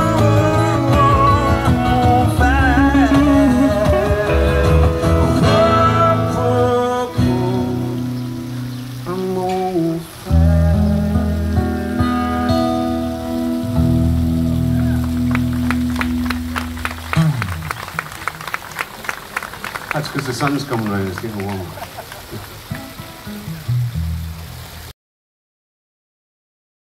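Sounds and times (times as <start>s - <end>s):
person singing: 0.0s - 8.3s, 9.0s - 12.8s
acoustic guitar: 0.0s - 18.4s, 22.6s - 24.6s
audience clapping: 14.4s - 23.2s.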